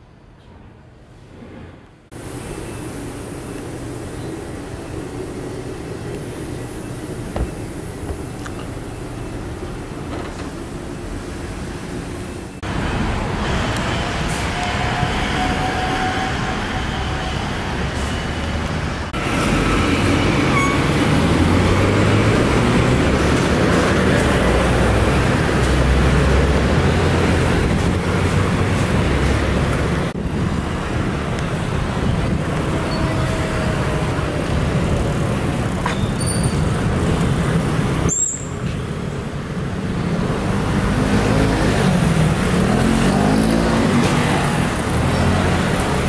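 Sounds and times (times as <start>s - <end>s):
city street traffic rumble: 0.0s - 46.0s.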